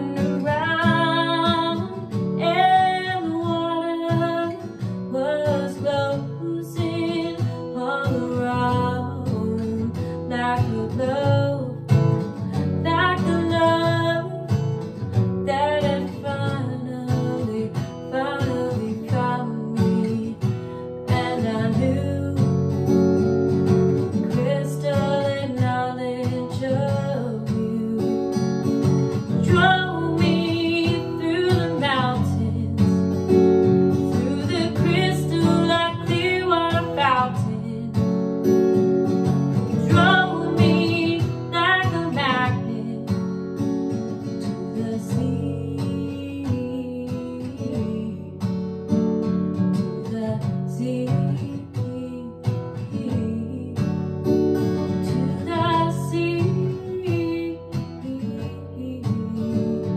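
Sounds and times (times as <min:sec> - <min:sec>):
acoustic guitar chords: 0:00.0 - 0:59.9
woman singing: 0:00.0 - 0:59.9.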